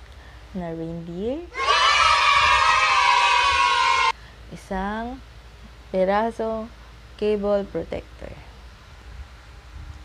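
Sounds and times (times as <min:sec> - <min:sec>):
group of voices cheering: 0:01.5 - 0:04.2.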